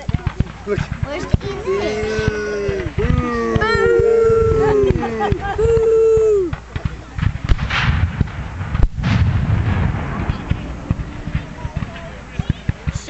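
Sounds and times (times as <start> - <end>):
rumble of gunfire: 0.0 - 13.0
sharp gunshot report: 4.5 - 13.0.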